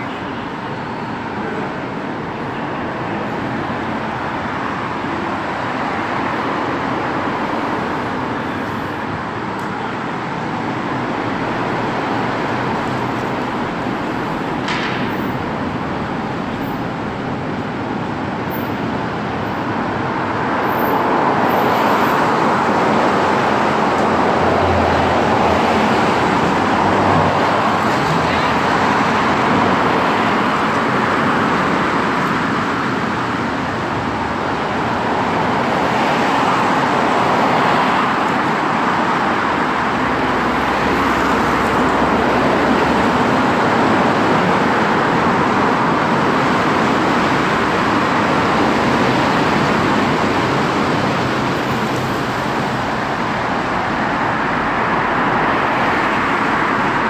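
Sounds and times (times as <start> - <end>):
road traffic on wet road: 0.0 - 57.0.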